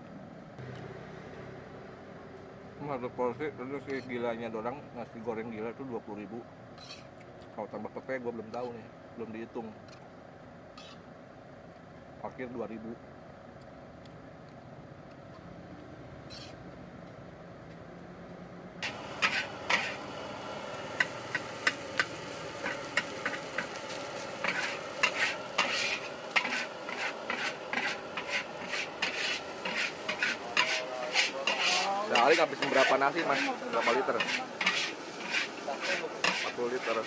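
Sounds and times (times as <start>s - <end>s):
metal spatula scraping wok: 6.8s - 7.1s, 10.8s - 11.0s, 16.3s - 16.6s, 18.8s - 37.0s
frying sizzle: 18.8s - 37.0s.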